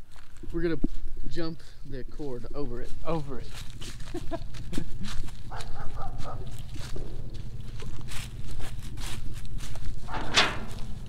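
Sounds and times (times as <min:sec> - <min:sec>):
footsteps on leaves: 0:02.8 - 0:10.1
scraping rustle: 0:06.4 - 0:11.0
steady low rumble: 0:06.8 - 0:11.0.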